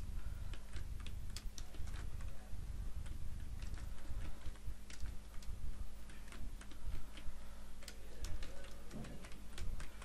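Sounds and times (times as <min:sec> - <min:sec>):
faint low hum: 0:00.0 - 0:10.0
computer keyboard typing: 0:00.3 - 0:10.0.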